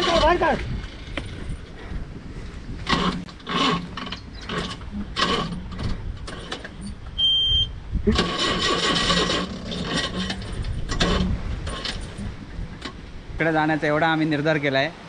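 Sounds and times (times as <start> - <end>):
diesel engine turning over: 8.1 - 12.2.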